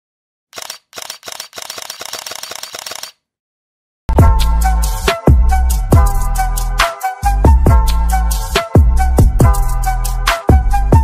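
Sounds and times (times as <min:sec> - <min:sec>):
camera shutter clicks: 0:00.6 - 0:03.2.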